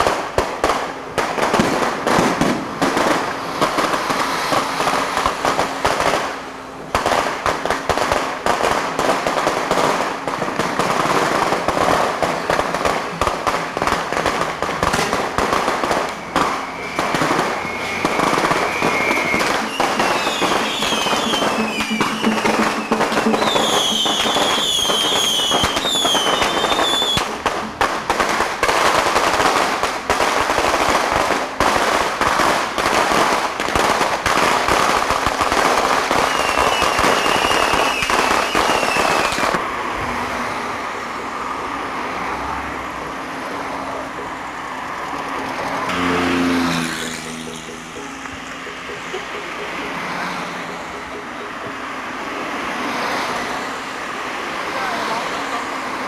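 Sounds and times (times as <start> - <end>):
firecrackers crackling: 0.0 - 42.3, 42.9 - 56.0
high whistling tones: 15.9 - 27.8, 36.2 - 39.4.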